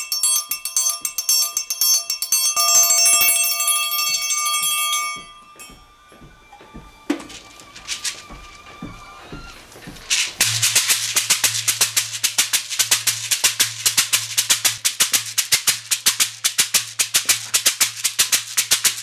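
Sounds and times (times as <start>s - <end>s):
gourd shaker rattling: 7.1s - 19.0s.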